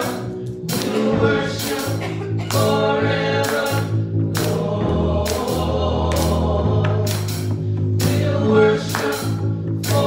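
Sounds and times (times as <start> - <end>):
backing voices singing: 0.0 - 10.0
electric bass guitar: 0.0 - 10.0.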